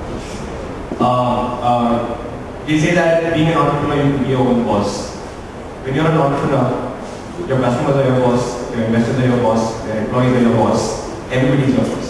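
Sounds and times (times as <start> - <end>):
man speaking into a microphone: 1.0 - 12.0.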